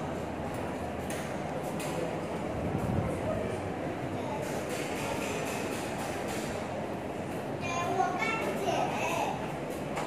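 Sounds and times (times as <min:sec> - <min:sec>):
rumbling background noise: 0:00.0 - 0:05.2.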